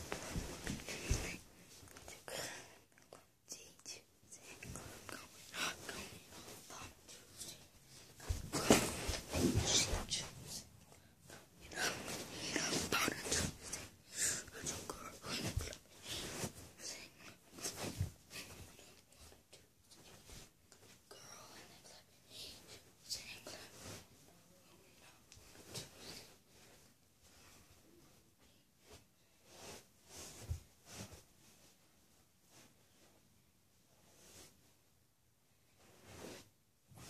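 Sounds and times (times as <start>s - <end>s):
soft breathy hiss: 0.0s - 33.2s
faint whispering: 0.6s - 26.4s.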